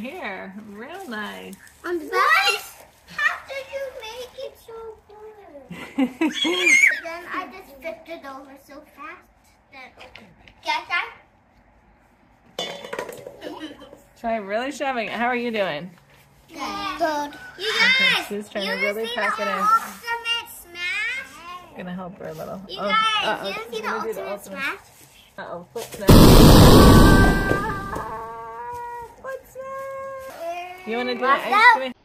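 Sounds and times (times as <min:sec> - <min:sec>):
steady high tone: 0:26.1 - 0:28.3
explosion blast: 0:26.1 - 0:28.4.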